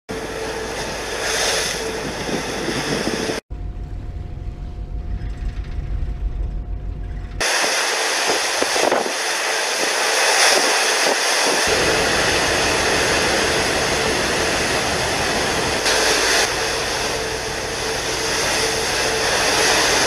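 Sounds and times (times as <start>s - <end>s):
engine roar: 0.1s - 20.0s
faint steady hum: 0.2s - 8.5s
wind noise: 1.1s - 20.0s
deep low rumble: 2.0s - 7.5s.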